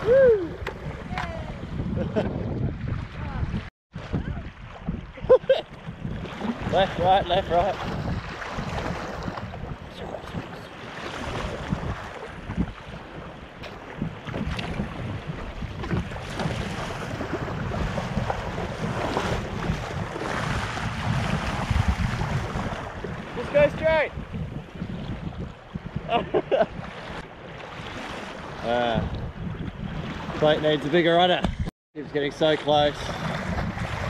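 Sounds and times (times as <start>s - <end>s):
choppy sea water slapping: 0.0s - 34.0s
paddle blades splashing: 0.0s - 34.0s
wind buffeting microphone: 0.0s - 34.0s.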